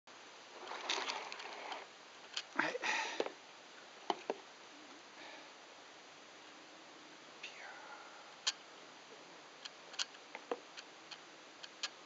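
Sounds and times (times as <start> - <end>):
faint sharp clicks and taps: 9.6 - 12.0.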